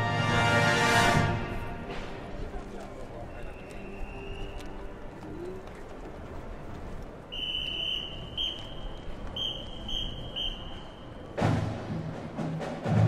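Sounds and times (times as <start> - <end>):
whistle blasts: 3.3 - 4.6, 7.3 - 11.4.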